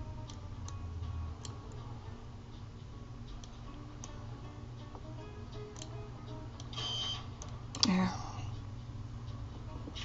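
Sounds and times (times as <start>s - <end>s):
faint background music: 0.0s - 10.0s
low steady hum: 0.0s - 10.0s.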